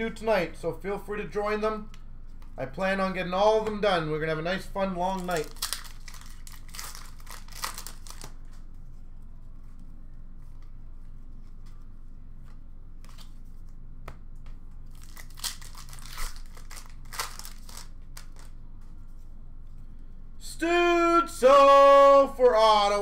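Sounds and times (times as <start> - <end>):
steady low hum: 0.0 - 23.0
cards shuffling: 5.0 - 9.0, 9.6 - 19.2
wrappers tearing and crinkling: 5.1 - 8.6, 14.9 - 18.6.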